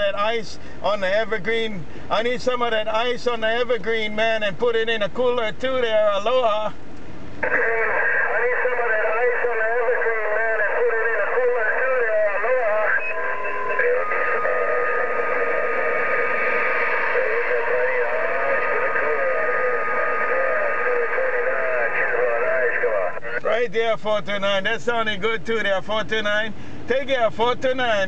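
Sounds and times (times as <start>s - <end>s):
steady radio whistle: 7.4s - 23.4s
voice over radio transceiver: 7.4s - 28.0s.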